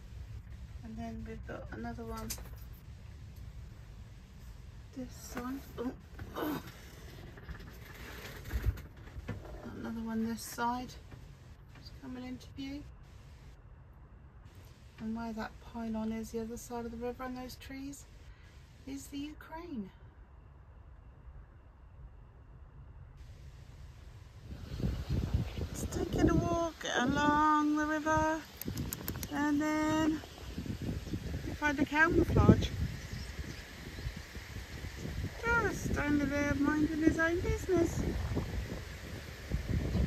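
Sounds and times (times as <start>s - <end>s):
wind rumbling on microphone: 0.0s - 13.5s, 23.2s - 40.0s.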